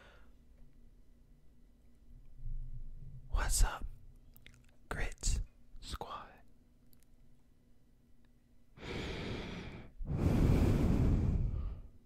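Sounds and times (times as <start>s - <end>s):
breath through the nose: 8.8s - 11.9s.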